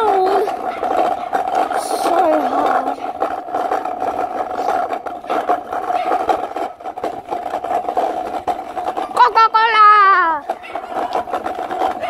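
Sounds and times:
scooter rattling over bumps: 0:00.0 - 0:12.0
scooter wheels humming: 0:00.0 - 0:12.0.

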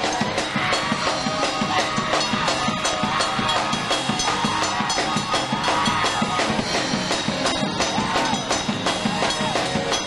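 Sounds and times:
gospel choir and band: 0:00.0 - 0:10.0
quick steady drum beat: 0:00.0 - 0:10.0.

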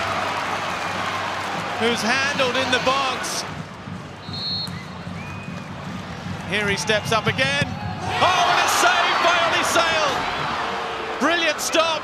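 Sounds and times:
stadium crowd noise: 0:00.0 - 0:12.0
referee's whistle: 0:04.2 - 0:05.6.

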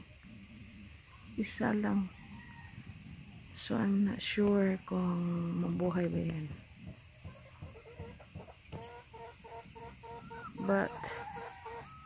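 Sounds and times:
faint low thuds: 0:05.4 - 0:08.9
chicken clucking: 0:06.8 - 0:12.0.

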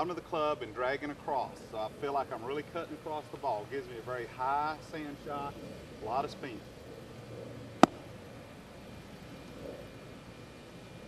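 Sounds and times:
golf club slapping sand: 0:07.8 - 0:08.1.

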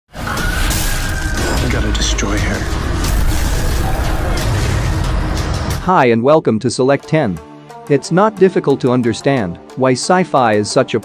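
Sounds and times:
sound effects: 0:00.1 - 0:05.9
deep rumble: 0:01.1 - 0:05.9
man speaking: 0:01.5 - 0:02.8, 0:05.8 - 0:11.0.

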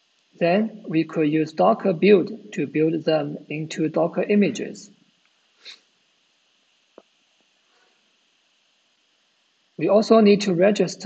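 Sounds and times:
person sniffing: 0:05.6 - 0:05.8.

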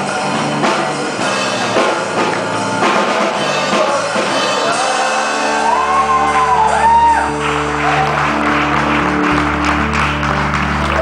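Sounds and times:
gospel band final chord: 0:00.0 - 0:11.0.

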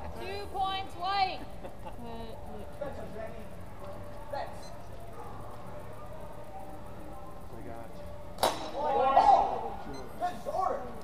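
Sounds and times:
people calling out: 0:08.7 - 0:09.9.

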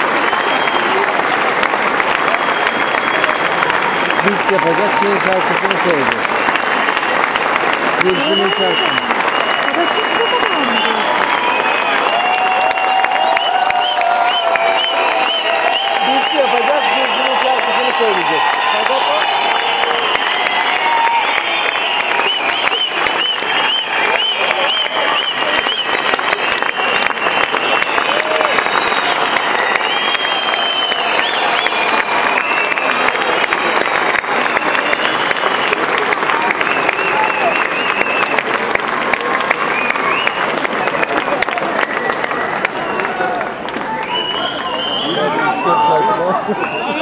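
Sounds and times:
audience cheering and calling out: 0:00.0 - 0:47.0
audience clapping: 0:00.0 - 0:47.0.

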